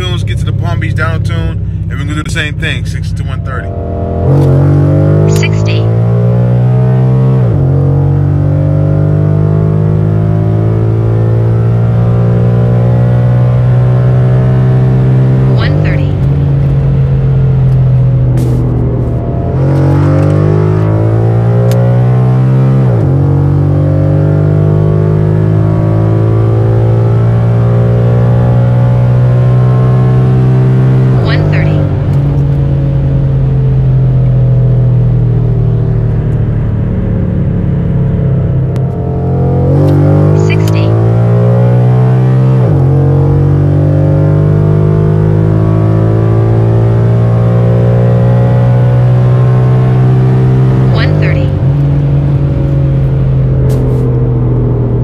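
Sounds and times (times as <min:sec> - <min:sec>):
car engine and exhaust drone: 0:00.0 - 0:55.0.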